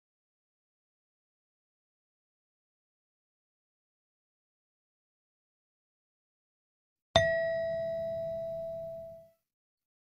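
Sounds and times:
bell-like chime: 7.2 - 9.3.

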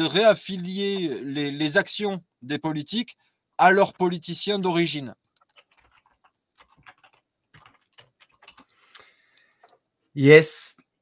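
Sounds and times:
computer keyboard and mouse clicking: 5.3 - 9.8.

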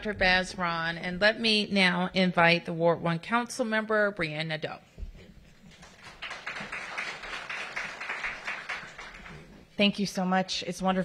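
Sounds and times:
audience clapping: 5.7 - 9.6.

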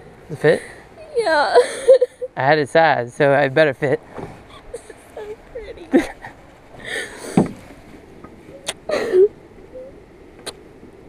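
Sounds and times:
dull knock on metal boat: 7.3 - 7.6.

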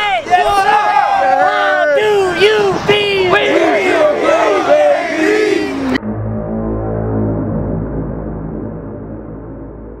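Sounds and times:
group yelling and whooping: 0.0 - 6.0
low droning music with bass: 5.8 - 10.0.

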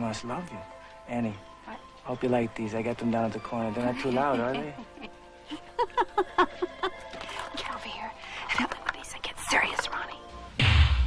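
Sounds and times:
quiet background music: 0.0 - 11.0
woman laughing: 3.8 - 7.2.

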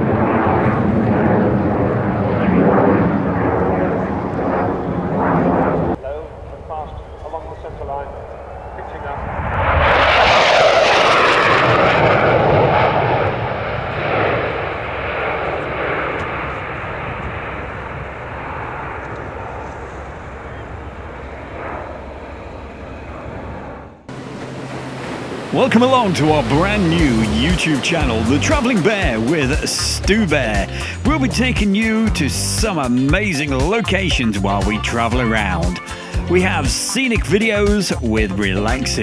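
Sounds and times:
jet aircraft flypast: 0.0 - 39.0.

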